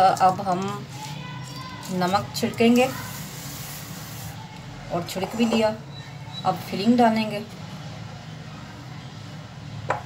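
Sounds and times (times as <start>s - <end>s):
salt sprinkled on dough: 0.1s - 4.6s.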